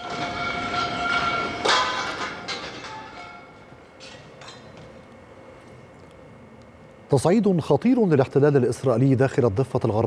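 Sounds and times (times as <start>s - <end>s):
high whine with overtones: 0.0s - 10.0s.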